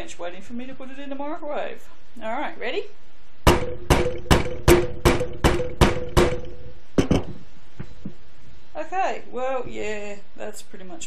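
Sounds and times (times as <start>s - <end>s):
rubber mallet striking stamp: 3.5s - 7.4s.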